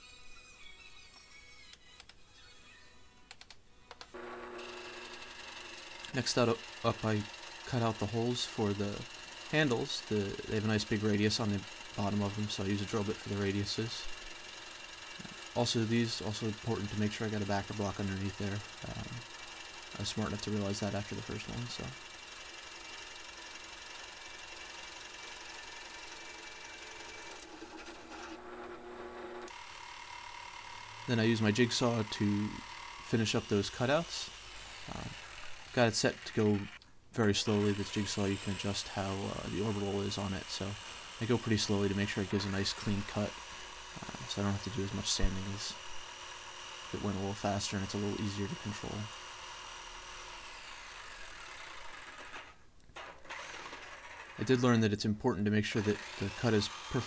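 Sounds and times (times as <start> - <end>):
jigsaw cutting wood: 4.1 - 36.8, 37.4 - 54.6, 55.7 - 57.0
drill press boring into wood: 4.1 - 54.6, 55.7 - 57.0.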